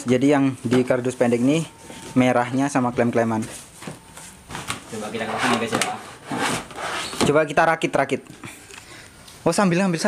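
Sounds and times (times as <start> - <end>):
plastic pans scraping together: 5.2 - 7.4.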